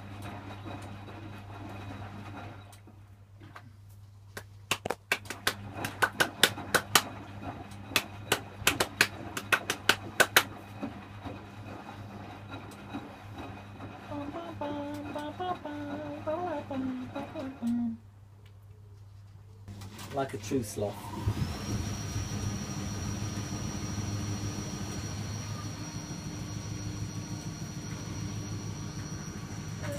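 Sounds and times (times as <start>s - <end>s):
washing machine humming: 0.0s - 18.3s, 19.7s - 29.9s
person humming a tune: 14.1s - 18.0s.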